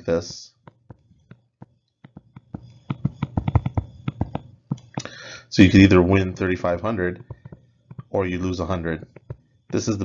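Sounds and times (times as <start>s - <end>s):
stylus tapping on tablet screen: 0.1s - 5.1s, 7.0s - 8.2s, 9.0s - 10.0s.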